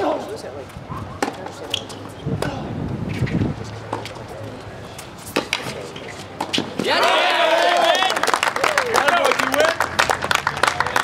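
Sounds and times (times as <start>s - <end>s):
tennis ball struck by racquets: 1.1s - 4.2s, 5.2s - 7.0s
spectators shouting and cheering: 6.8s - 9.8s
quick clapping: 7.6s - 11.0s.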